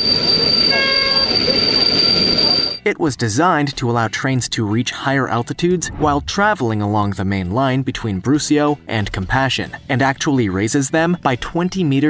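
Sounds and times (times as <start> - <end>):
low train rumble: 0.0 - 2.8
train wheels squealing: 0.0 - 2.8.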